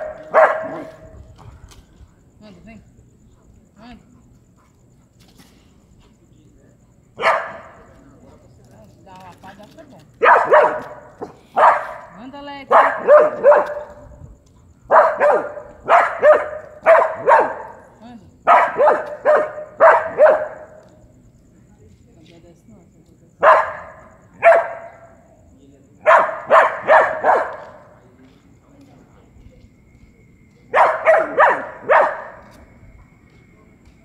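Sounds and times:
dog barking: 0.0s - 1.1s, 7.2s - 7.8s, 10.2s - 14.1s, 14.9s - 17.8s, 18.4s - 20.8s, 23.4s - 25.2s, 26.0s - 28.0s, 30.7s - 32.5s.

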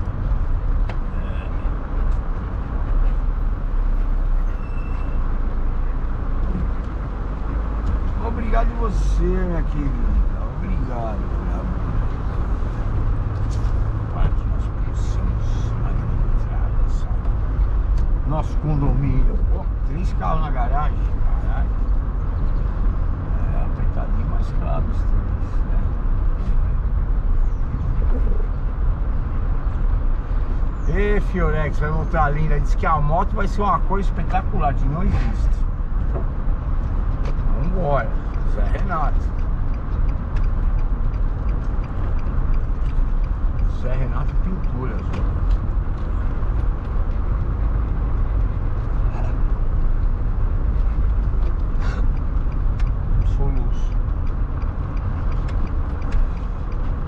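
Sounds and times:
car interior rumble: 0.0s - 57.0s.

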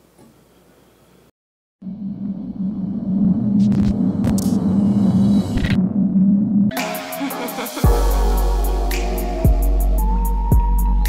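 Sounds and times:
low droning hum: 1.8s - 6.8s.

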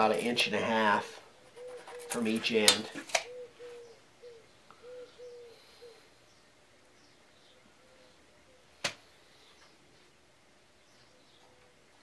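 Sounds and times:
dove cooing: 1.4s - 6.1s.

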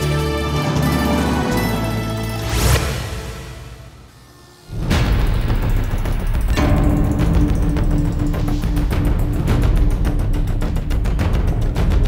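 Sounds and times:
dramatic bass-heavy film score: 0.0s - 12.0s.

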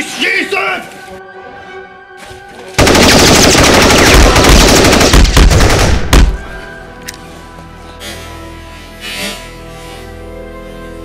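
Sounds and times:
background music: 0.0s - 11.0s
automatic gunfire: 2.8s - 6.4s.

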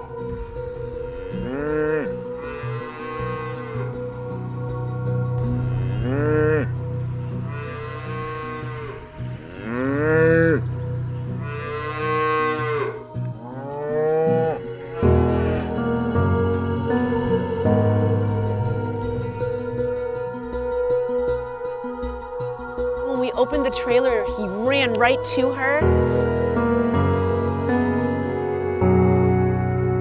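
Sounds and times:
soft background music: 0.0s - 30.0s
cow and calf mooing: 0.9s - 3.8s, 5.4s - 15.9s.

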